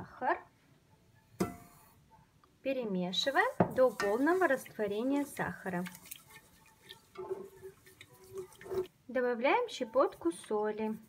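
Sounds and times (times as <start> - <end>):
whisk swishing in a pot: 3.2 - 9.0, 9.7 - 11.0.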